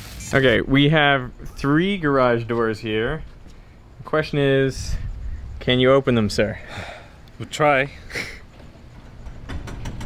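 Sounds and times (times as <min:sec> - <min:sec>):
garage door opener rumbling: 0:08.8 - 0:10.0.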